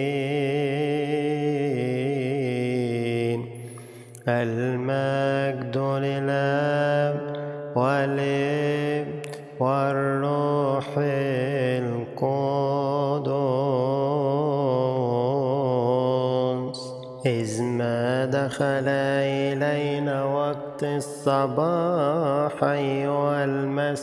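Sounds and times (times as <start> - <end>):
person chanting a prayer: 0.0 - 24.0.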